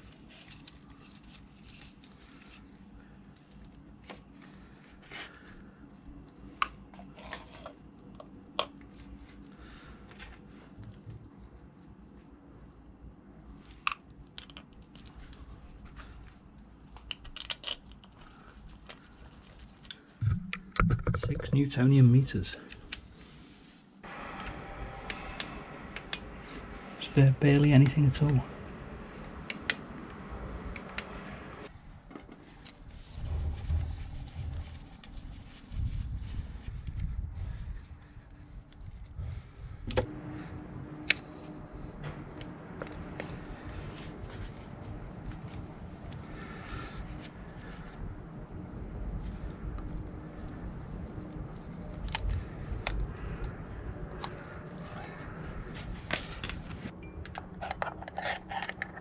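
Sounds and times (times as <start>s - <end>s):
dull low bumps: 20.2s - 21.6s.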